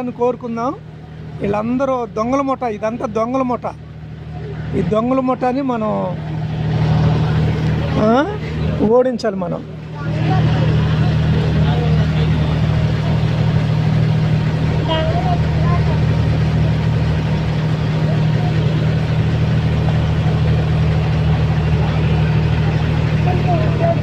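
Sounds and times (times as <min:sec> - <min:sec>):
bus engine droning: 0:00.0 - 0:24.0
faint voices: 0:02.3 - 0:24.0.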